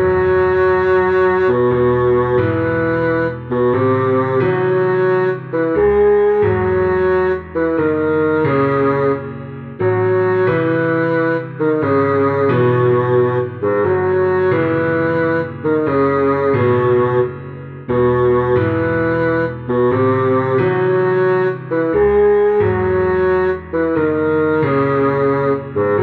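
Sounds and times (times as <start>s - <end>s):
bassoon melody: 0.0s - 26.0s.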